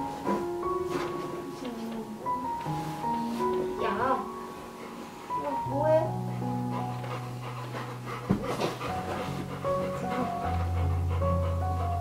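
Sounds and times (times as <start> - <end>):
background music: 0.0 - 12.0
dog panting: 0.0 - 12.0.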